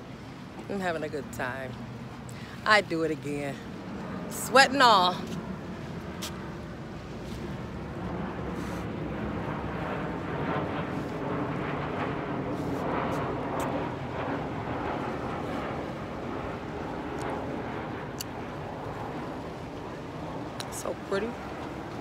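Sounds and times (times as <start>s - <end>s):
jet airliner flying overhead: 0.0s - 22.0s.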